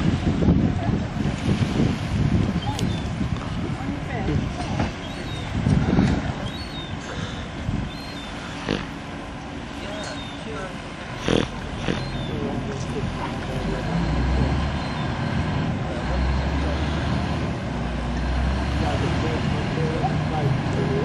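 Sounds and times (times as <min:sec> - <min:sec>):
diesel engine low rumble: 0:00.0 - 0:21.0.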